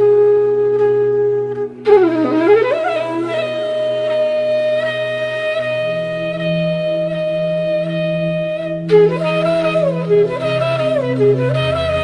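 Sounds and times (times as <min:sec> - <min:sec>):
woodwind melody: 0:00.0 - 0:12.0.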